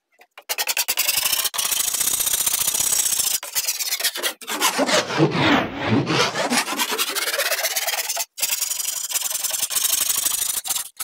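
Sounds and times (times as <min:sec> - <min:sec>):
hand file rasping on wood: 0:03.5 - 0:08.3.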